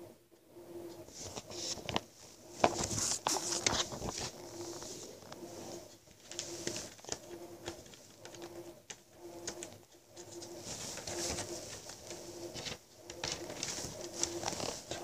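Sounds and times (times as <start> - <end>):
faint pulsing low hum: 0.0 - 15.0
cloth rustling on microphone: 1.1 - 7.0, 10.3 - 15.0.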